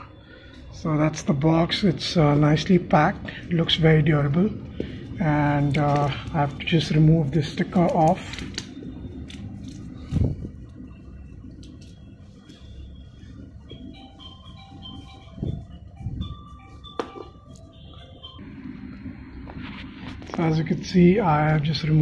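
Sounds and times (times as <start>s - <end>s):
faint simple tune: 8.8s - 20.3s.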